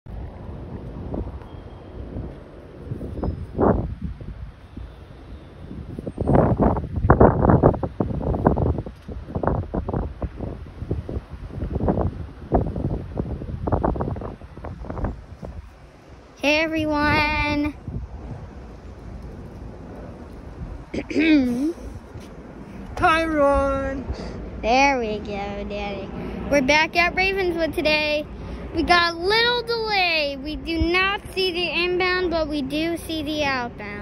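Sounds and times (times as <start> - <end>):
wind buffeting microphone: 0.1 - 34.0.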